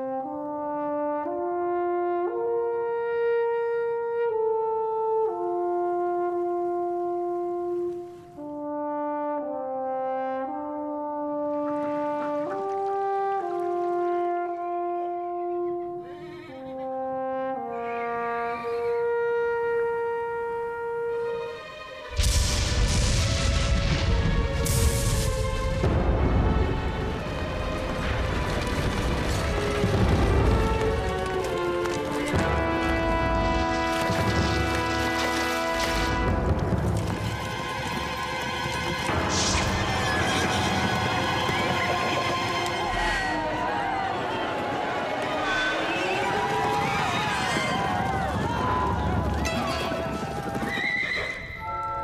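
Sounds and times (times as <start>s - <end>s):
music: 0.0s - 52.0s
horses galloping: 11.4s - 14.4s, 26.5s - 52.0s
hooves clattering: 27.1s - 52.0s
horses neighing: 48.8s - 51.7s.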